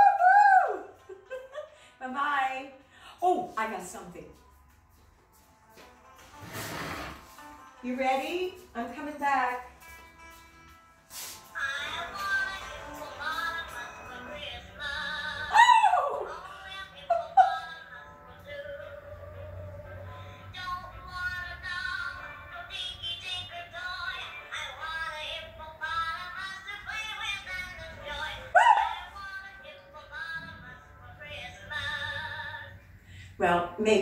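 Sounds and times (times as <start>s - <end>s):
soft background music: 0.0s - 34.0s
woman calling out: 15.5s - 16.3s.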